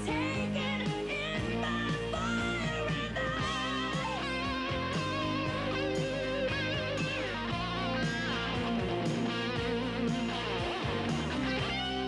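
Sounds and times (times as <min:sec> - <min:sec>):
bass and drums: 0:00.0 - 0:12.0
electric guitar lead with vibrato: 0:00.0 - 0:12.0.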